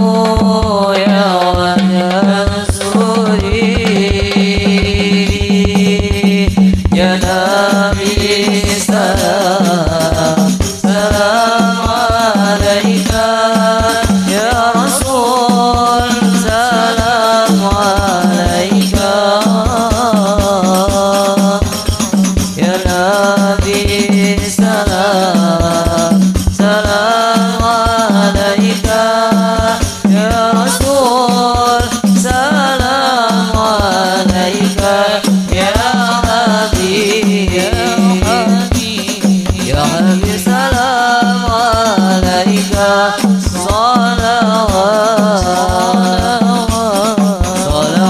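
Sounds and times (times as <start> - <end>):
frame drums beating: 0.0 - 48.0
men singing into microphones: 0.0 - 48.0.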